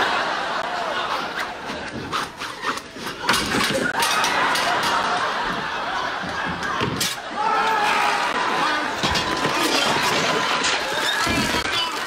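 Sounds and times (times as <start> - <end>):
studio audience laughing: 0.0 - 2.4, 3.8 - 7.4.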